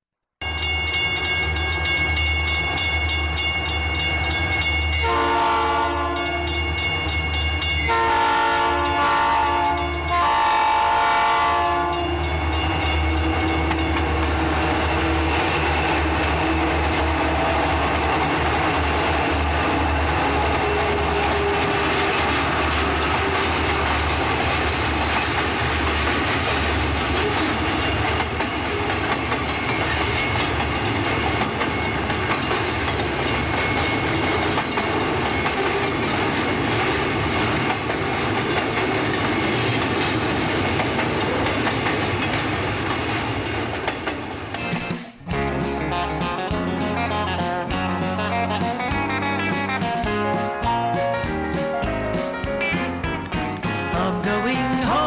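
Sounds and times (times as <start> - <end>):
train engine drone: 0.4 - 55.0
wheels clattering on rails: 0.4 - 55.0
train horn chord blasts: 4.9 - 6.7, 7.8 - 14.0.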